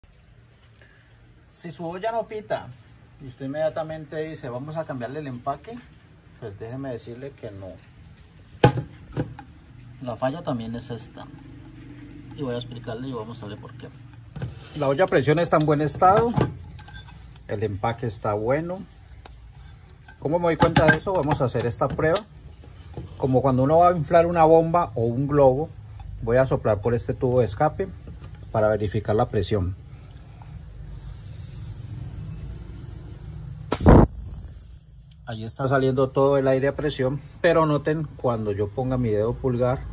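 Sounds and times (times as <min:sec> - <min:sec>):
loud breath puff: 0:30.2 - 0:33.0.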